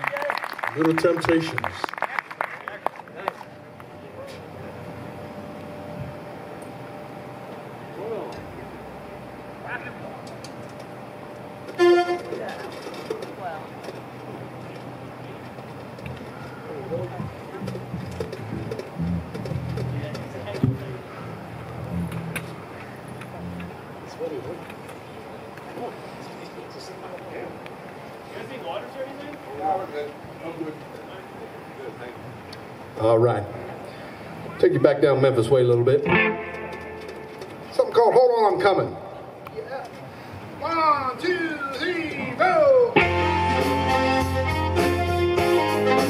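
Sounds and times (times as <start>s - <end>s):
low murmuring voices: 0.0s - 43.3s
saxophone honked note: 11.7s - 12.4s, 36.1s - 37.3s.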